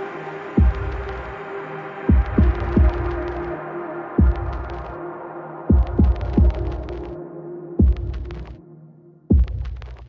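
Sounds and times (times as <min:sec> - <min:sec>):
deep kick drums: 0:00.6 - 0:01.3, 0:02.1 - 0:03.4, 0:04.2 - 0:04.9, 0:05.7 - 0:07.0, 0:07.8 - 0:08.5, 0:09.3 - 0:10.0.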